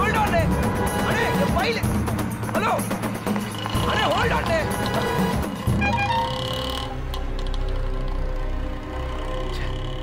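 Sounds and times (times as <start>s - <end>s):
film music with held tones: 0.0s - 10.0s.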